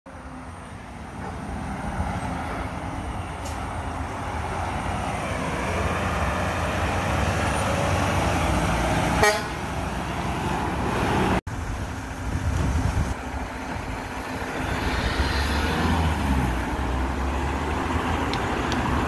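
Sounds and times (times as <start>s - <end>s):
garbage truck diesel engine: 0.1s - 19.0s
truck horn toot: 9.1s - 9.8s.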